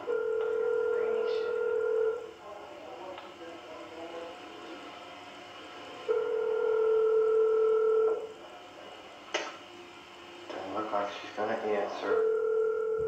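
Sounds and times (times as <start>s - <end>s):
telephone steady tone: 0.0s - 2.4s, 6.1s - 8.3s, 12.0s - 13.0s.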